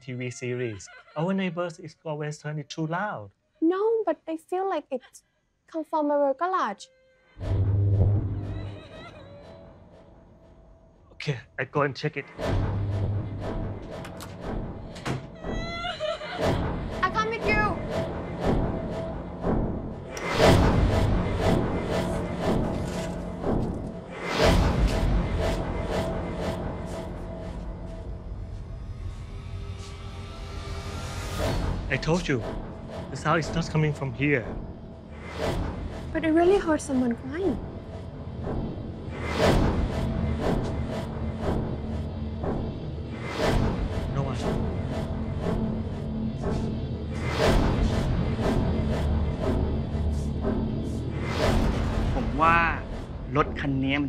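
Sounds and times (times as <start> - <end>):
low booming hit: 7.4 - 8.7
low drone: 7.4 - 54.0.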